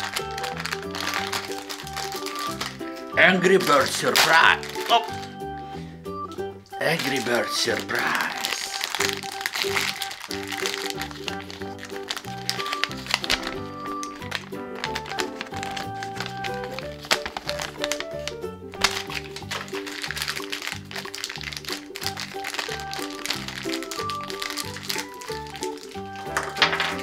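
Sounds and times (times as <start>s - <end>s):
wrappers crinkling and tearing: 0.0s - 5.5s, 6.7s - 27.0s.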